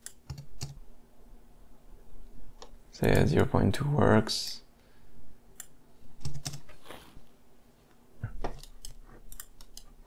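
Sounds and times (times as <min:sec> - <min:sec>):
computer keyboard and mouse clicks: 0:00.0 - 0:00.8, 0:05.6 - 0:06.7, 0:08.4 - 0:10.0.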